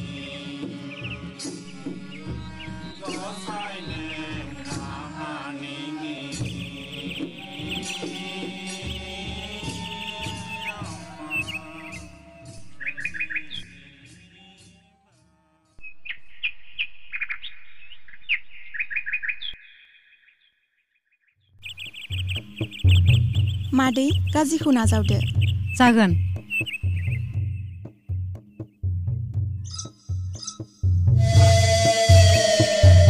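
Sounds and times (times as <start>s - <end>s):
birds chirping: 0.8s - 14.5s, 15.8s - 20.6s, 21.4s - 33.0s
music with steady low beat: 21.8s - 33.0s.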